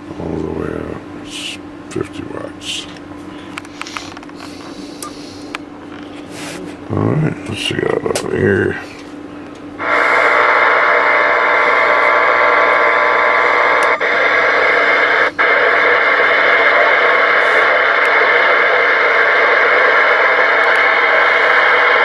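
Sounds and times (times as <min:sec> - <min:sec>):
radio receiver static hiss: 0:09.8 - 0:22.0.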